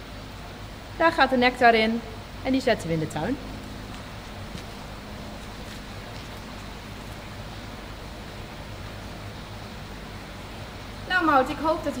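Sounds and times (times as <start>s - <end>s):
background hiss: 0.0s - 12.0s
low hum: 1.4s - 10.5s.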